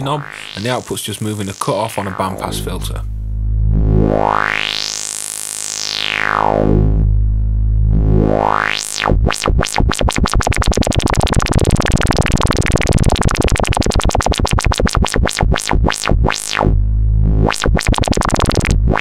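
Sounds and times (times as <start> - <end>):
synthesizer tone with filter sweeps: 0.0 - 19.0.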